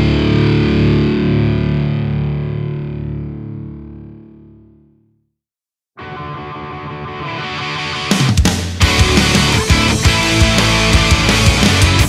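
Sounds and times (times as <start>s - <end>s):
distorted electric guitar chord: 0.0s - 4.8s, 6.0s - 12.0s.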